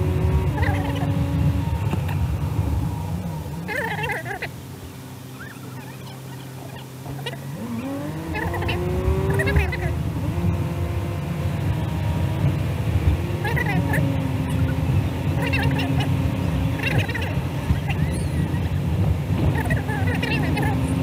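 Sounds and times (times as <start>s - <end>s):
car engine accelerating: 0.0s - 21.0s
road noise: 0.0s - 21.0s.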